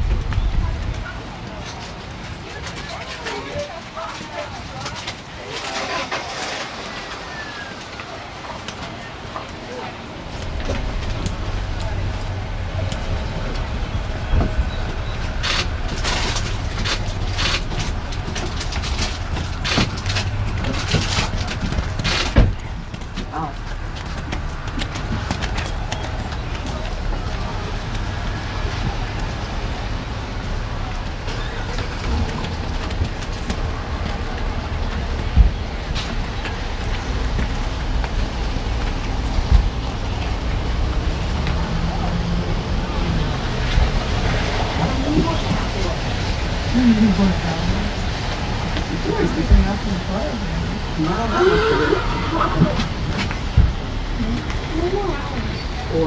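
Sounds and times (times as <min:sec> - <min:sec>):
wind rumble on microphone: 0:00.0 - 0:02.8
indistinct voices: 0:00.0 - 0:56.0.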